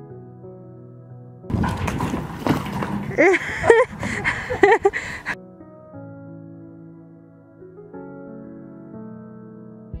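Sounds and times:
soft background music: 0.0 - 1.5, 5.4 - 10.0
wheelbarrow rattling over icy ground: 1.5 - 5.4.

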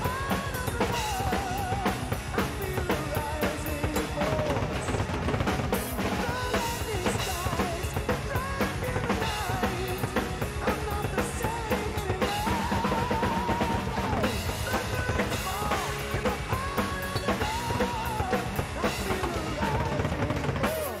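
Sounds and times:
backing track with lead melody: 0.0 - 21.0
drum kit played fast: 0.0 - 21.0.

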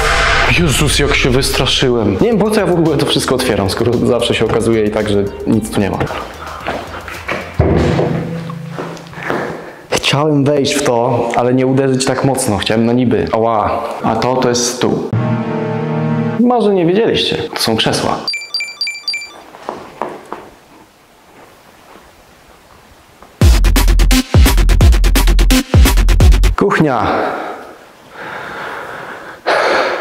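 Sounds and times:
background music low note: 0.0 - 9.8, 15.1 - 16.9
short high electronic beeps: 18.3 - 19.4.

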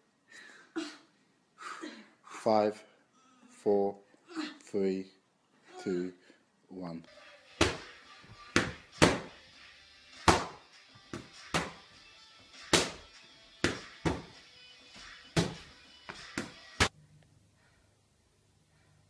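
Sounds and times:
gloves smacking focus mitts: 7.6 - 9.4, 10.2 - 14.4, 15.0 - 16.9.

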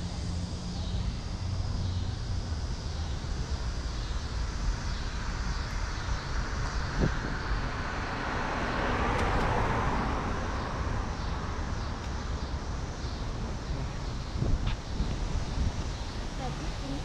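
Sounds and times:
low street rumble: 0.0 - 17.0
vehicle passing: 6.8 - 17.0.

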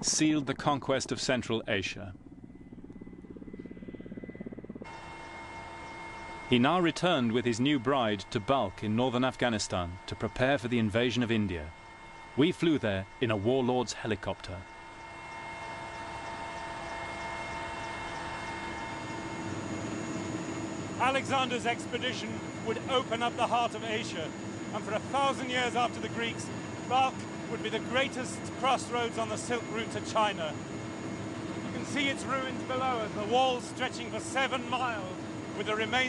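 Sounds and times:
helicopter rotor chopping: 0.0 - 36.0.

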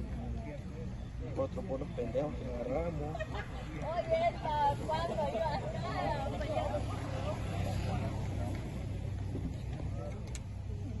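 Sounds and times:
engine running low rumble: 0.0 - 11.0
faint indistinct voices: 0.0 - 11.0.

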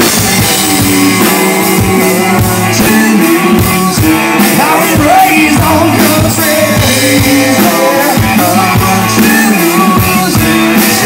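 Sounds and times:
live country rock band: 0.0 - 11.0.

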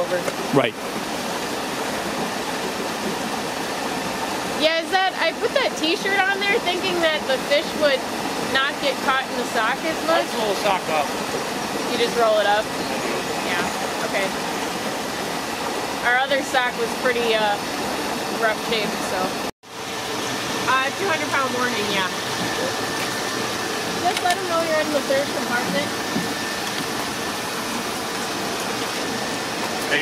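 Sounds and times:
fish pump machinery: 0.0 - 30.0
water rushing through hose: 0.0 - 30.0.

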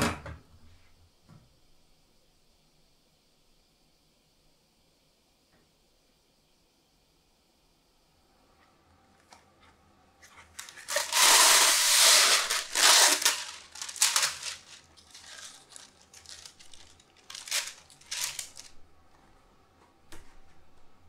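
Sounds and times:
parchment paper rustling: 10.2 - 19.3
paper crinkling rips: 10.4 - 18.8.

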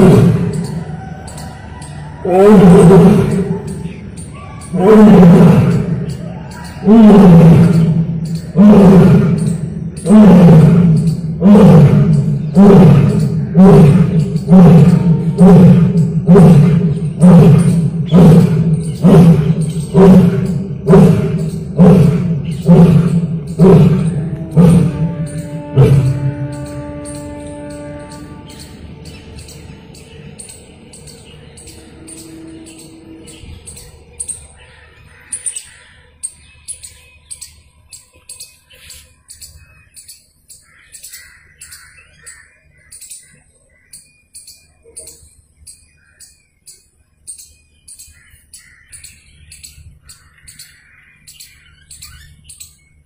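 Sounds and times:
lion roaring in low grunts: 0.0 - 1.0, 2.2 - 3.9, 4.7 - 27.0
birds chirping: 0.0 - 53.0
softer lower bird calls: 0.0 - 53.0.

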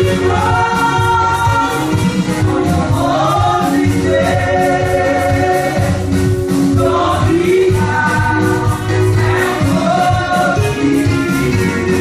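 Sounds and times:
women singing gospel: 0.0 - 12.0.

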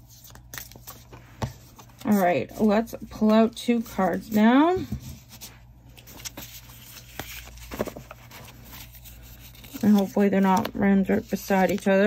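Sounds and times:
cards rustling: 0.0 - 4.6, 5.2 - 12.0.

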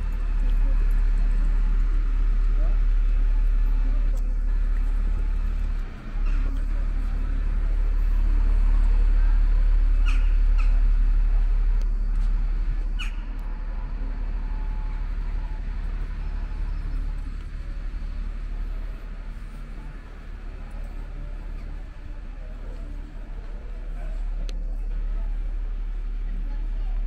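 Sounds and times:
indistinct voices of passers-by: 0.0 - 27.0
traffic rumble: 0.0 - 27.0
wind: 0.0 - 27.0.

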